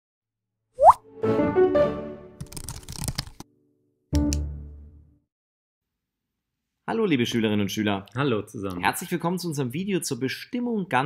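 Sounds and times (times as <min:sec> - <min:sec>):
rising plop: 0:00.8 - 0:01.0.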